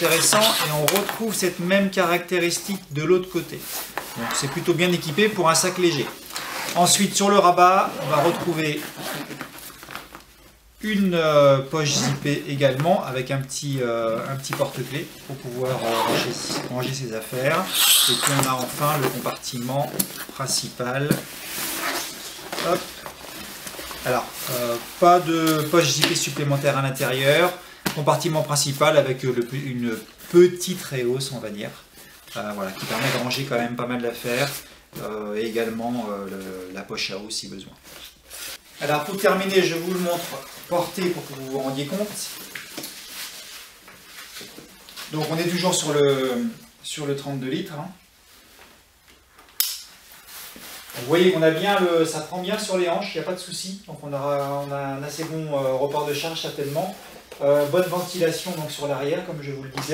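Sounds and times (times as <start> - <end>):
strap rustling: 0.0 - 10.7, 11.8 - 36.8, 37.8 - 45.7
backpack fabric rustling: 3.6 - 10.5, 14.1 - 26.4, 32.3 - 33.6.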